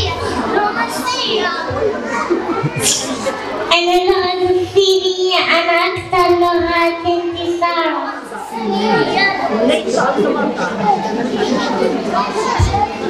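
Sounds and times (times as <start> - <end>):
murmured chatter: 0.0 - 13.0.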